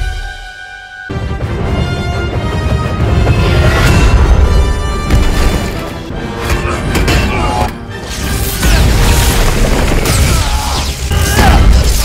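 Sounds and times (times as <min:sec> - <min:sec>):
battle film music: 0:00.0 - 0:12.0.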